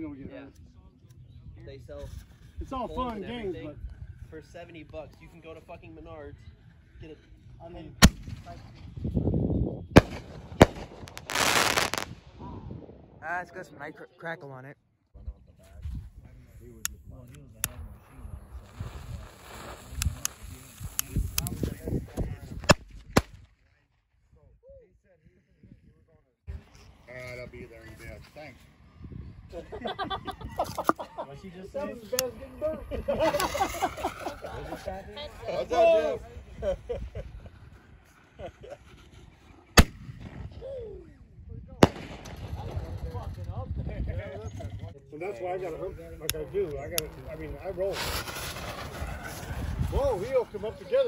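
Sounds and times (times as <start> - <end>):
firecracker cracks and pops: 8.0 - 8.8, 10.0 - 12.4, 17.6 - 23.6, 39.8 - 40.6, 41.8 - 43.4, 46.3 - 49.9
fuse hissing and sparking: 18.6 - 21.7
lighter: 19.0 - 21.5.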